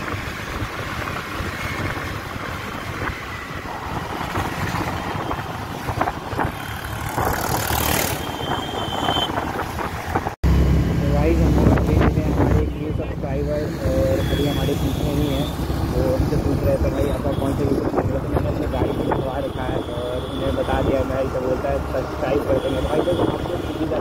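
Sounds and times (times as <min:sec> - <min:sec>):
wind noise: 0:00.0 - 0:20.0
road noise: 0:00.0 - 0:24.0.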